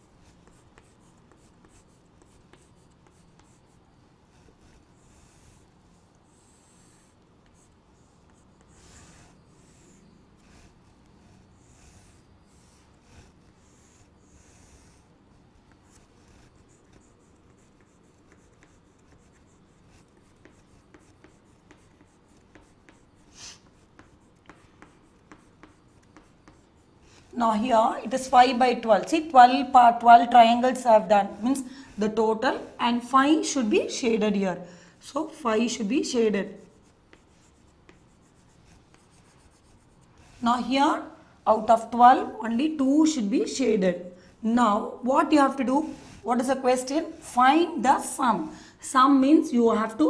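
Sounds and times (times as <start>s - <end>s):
chalk strokes and taps: 0.0s - 15.0s, 15.6s - 34.1s, 35.9s - 42.4s, 45.2s - 47.3s
chalk scratching on chalkboard: 0.0s - 34.3s, 35.1s - 48.4s
chalk tapping on board: 0.2s - 3.8s, 15.7s - 27.3s, 36.6s - 40.4s.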